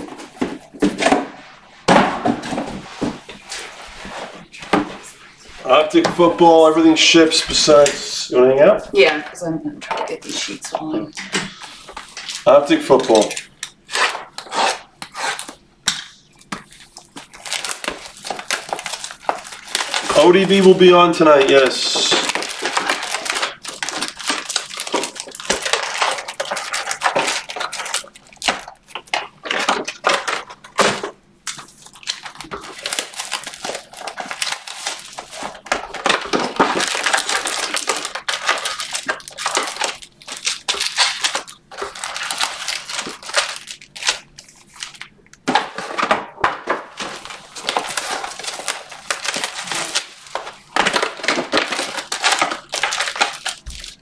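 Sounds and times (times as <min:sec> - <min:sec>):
wrappers crinkling and tearing: 0:10.1 - 0:54.0.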